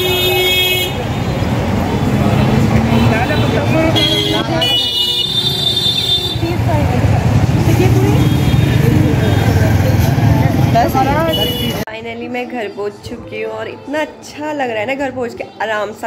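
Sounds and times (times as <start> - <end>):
vehicle horns honking: 0.0 - 1.3, 2.0 - 6.7, 7.6 - 11.9
road traffic: 0.0 - 11.9
people talking: 1.4 - 5.6, 6.2 - 16.0.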